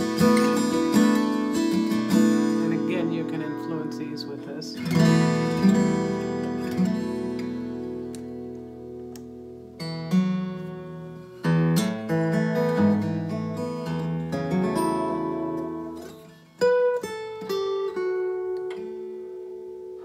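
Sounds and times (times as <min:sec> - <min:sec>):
acoustic guitar fingerstyle with chorus: 0:00.0 - 0:20.0.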